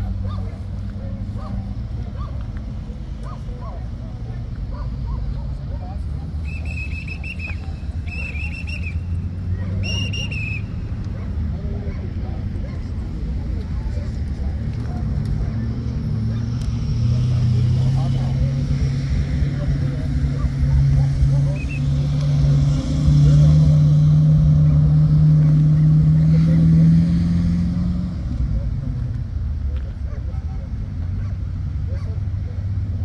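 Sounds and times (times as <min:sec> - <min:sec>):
vehicle engine humming: 0:00.0 - 0:33.0.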